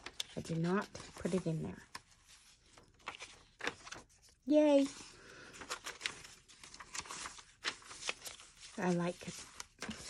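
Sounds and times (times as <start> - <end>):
paper crinkling: 0.0 - 10.0
paper pages rustling: 0.0 - 10.0.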